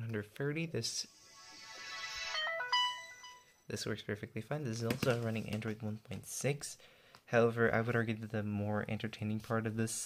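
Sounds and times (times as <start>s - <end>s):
phone startup sound: 1.0s - 3.7s.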